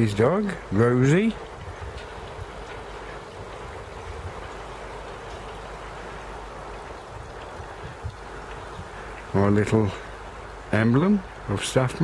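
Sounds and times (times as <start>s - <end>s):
running water splashing: 0.0s - 12.0s.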